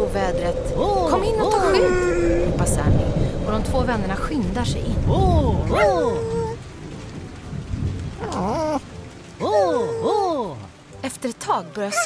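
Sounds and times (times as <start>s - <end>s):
thunder rumbling: 0.0s - 10.9s
heavy rain falling: 0.0s - 12.0s.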